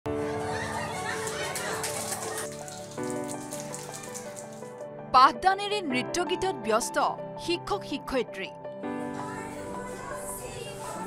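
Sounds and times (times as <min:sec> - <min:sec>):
people clapping: 0:00.2 - 0:04.8.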